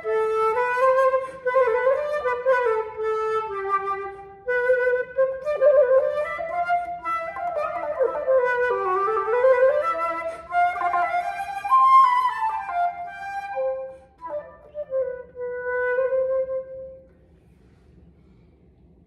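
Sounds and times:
solo flute melody: 0:00.0 - 0:17.1.

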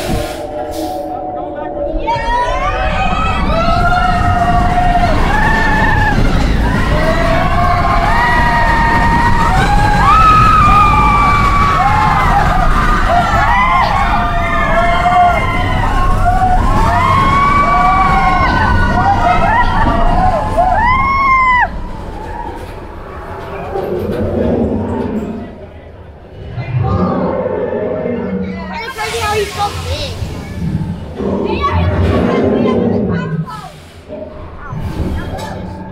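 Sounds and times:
roller coaster train rumbling: 0:00.0 - 0:35.9
riders screaming and yelling: 0:01.9 - 0:25.7.

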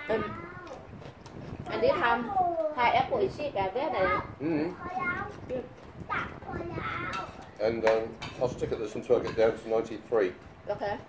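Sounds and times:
toddler babbling: 0:00.0 - 0:00.8.

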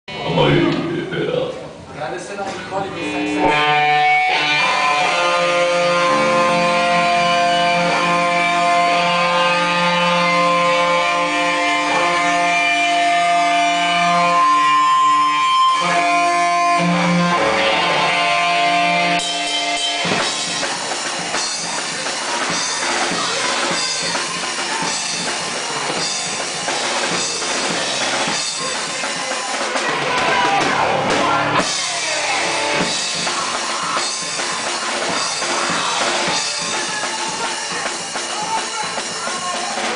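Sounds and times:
rock band playing live: 0:00.1 - 0:39.9.

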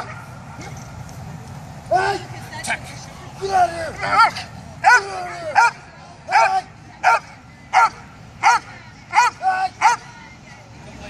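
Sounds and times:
man shouting: 0:01.9 - 0:02.3, 0:03.4 - 0:07.2, 0:07.8 - 0:10.0
dog barking loudly: 0:04.0 - 0:10.0.

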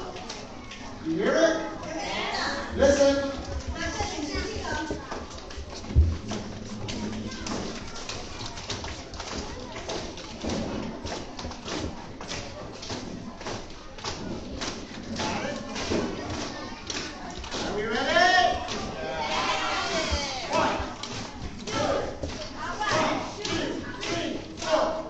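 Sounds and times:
murmuring voices in a hall: 0:00.0 - 0:25.0.

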